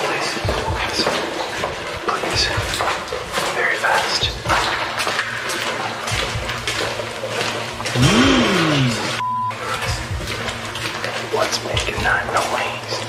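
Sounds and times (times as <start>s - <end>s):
low sound sliding in pitch: 8.0s - 9.2s
short beep tone: 9.2s - 9.6s.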